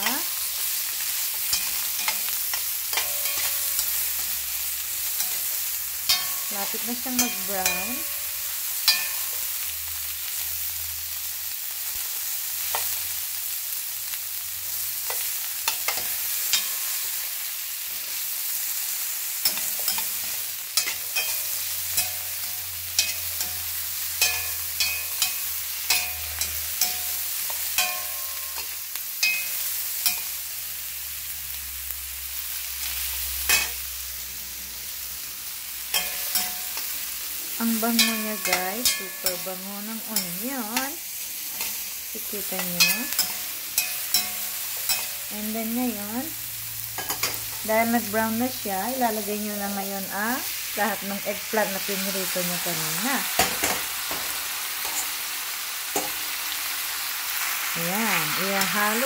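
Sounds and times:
metal tongs clicking on pan: 0:00.0 - 0:08.2, 0:12.7 - 0:13.0, 0:15.0 - 0:17.0, 0:19.4 - 0:30.4, 0:35.9 - 0:37.0, 0:37.7 - 0:45.3, 0:46.9 - 0:47.6, 0:53.3 - 0:55.2, 0:55.9 - 0:56.2
onions sizzling in a pan: 0:00.0 - 0:59.0.

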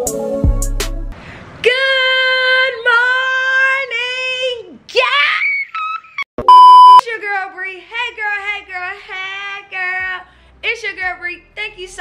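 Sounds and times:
woman shouting: 0:01.7 - 0:06.0
woman squealing: 0:05.0 - 0:06.2
steady beep tone: 0:06.4 - 0:07.0.

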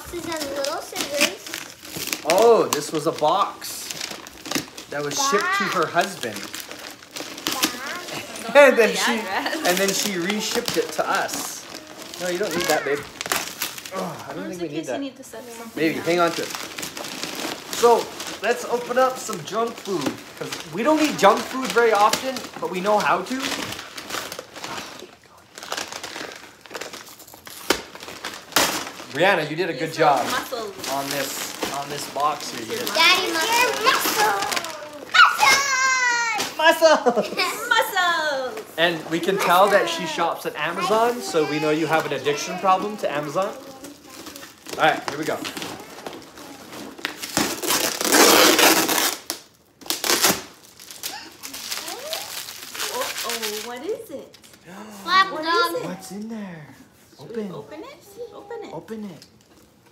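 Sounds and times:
packing paper and cardboard rustling: 0:00.0 - 0:59.9.

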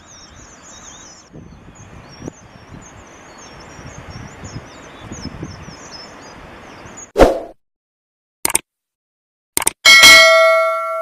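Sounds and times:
mouse double click: 0:09.6 - 0:09.8
notification bell ding: 0:09.9 - 0:11.0.

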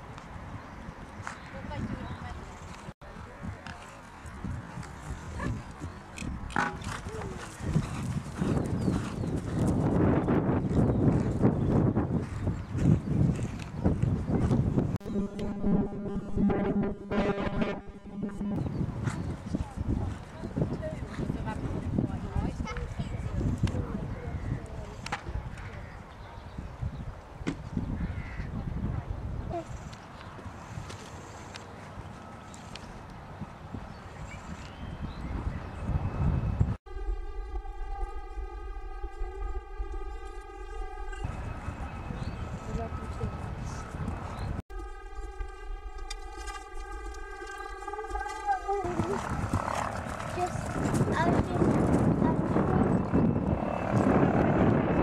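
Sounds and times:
horse hooves on grass: 0:02.6 - 0:14.7, 0:44.7 - 0:52.1
horse hoofbeats on grass: 0:05.9 - 0:14.6.

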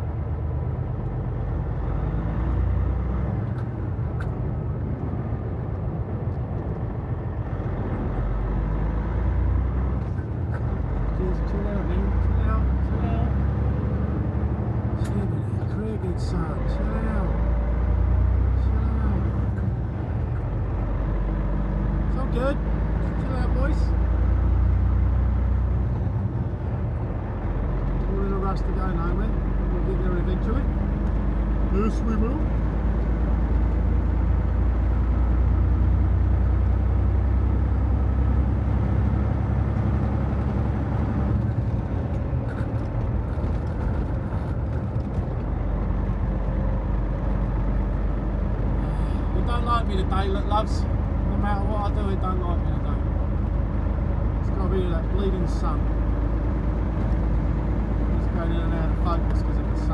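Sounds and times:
diesel engine droning: 0:00.0 - 0:59.9
road noise: 0:00.0 - 0:59.9.

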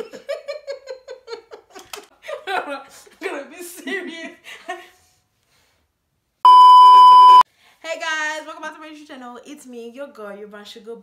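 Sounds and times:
electronic test-tone beep: 0:06.5 - 0:07.4.

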